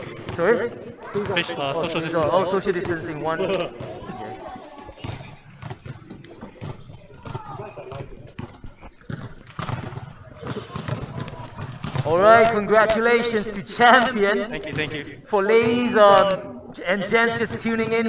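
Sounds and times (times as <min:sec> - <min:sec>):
faint voices: 0:00.0 - 0:18.0
microphone rustling and clicks: 0:13.8 - 0:14.8.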